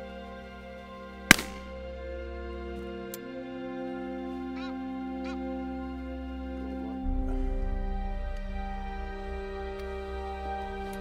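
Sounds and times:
soft instrumental music: 0:00.0 - 0:11.0
shotgun shot: 0:01.3 - 0:01.7
goose honking: 0:04.4 - 0:05.6.

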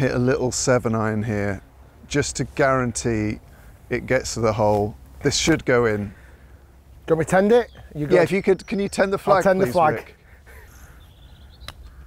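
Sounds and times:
faint birdsong: 0:00.0 - 0:12.0
low outdoor rumble: 0:00.0 - 0:12.0.

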